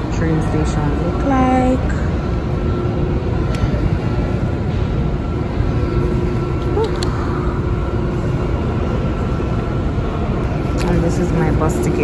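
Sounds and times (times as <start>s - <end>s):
faint steady hum: 0.0s - 12.0s
metro station rumble: 0.0s - 12.0s.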